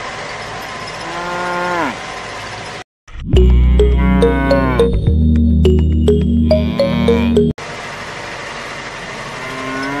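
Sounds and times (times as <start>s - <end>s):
cow mooing: 1.0s - 2.0s, 3.4s - 5.0s, 6.5s - 7.5s, 9.4s - 10.0s.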